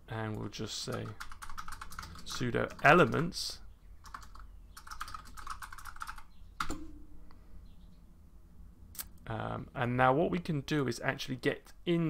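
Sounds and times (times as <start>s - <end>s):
keyboard typing: 0.9s - 3.2s, 4.0s - 6.9s.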